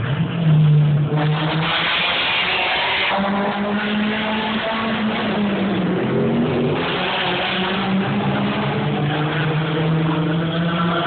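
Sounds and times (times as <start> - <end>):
distant race car engine: 0.0 - 11.0.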